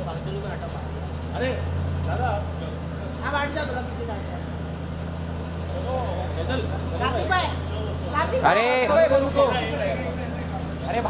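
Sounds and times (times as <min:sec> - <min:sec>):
car engine idling: 0:00.0 - 0:11.0
crowd voices: 0:00.0 - 0:11.0.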